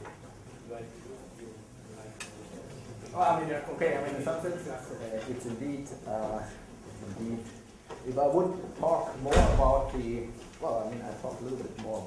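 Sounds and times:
loud thump: 9.3 - 10.0.

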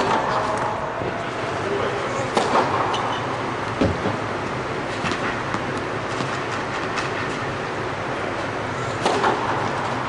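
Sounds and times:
rushing indoor hall noise: 0.0 - 10.0.

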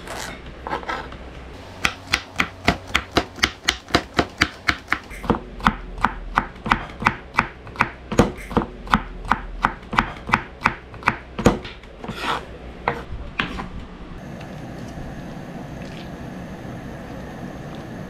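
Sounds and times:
knife scrape: 0.0 - 1.2, 12.0 - 13.0
knife chopping on cutting board: 1.8 - 13.6.

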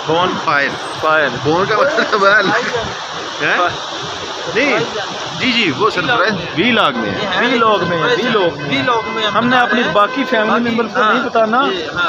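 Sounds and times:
men talking: 0.0 - 12.0
stream water rushing: 0.0 - 12.0.

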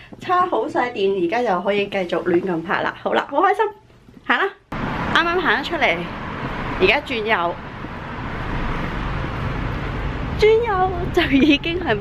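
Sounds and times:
road traffic rumble: 4.7 - 12.0.

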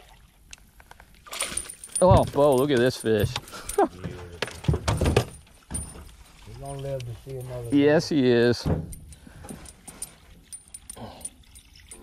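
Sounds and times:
fish splashing and rattling in boat: 0.0 - 12.0.

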